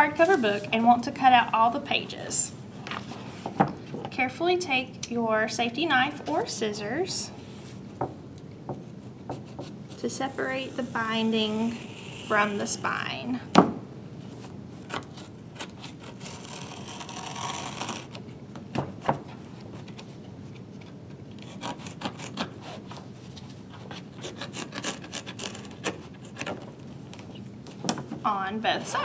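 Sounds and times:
knife rasping on paper and glue: 23.8s - 26.5s.

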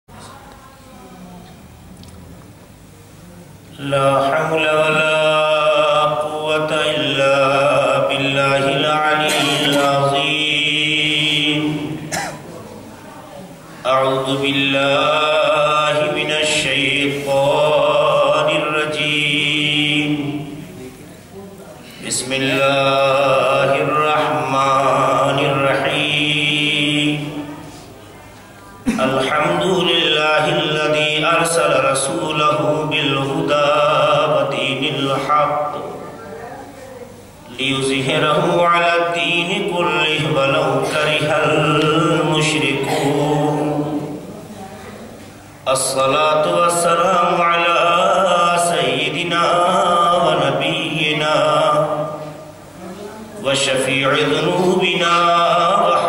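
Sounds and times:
man chanting: 3.7s - 12.1s, 13.8s - 21.0s, 21.9s - 27.6s, 28.9s - 36.1s, 37.5s - 44.2s, 45.6s - 52.2s, 53.4s - 56.0s.

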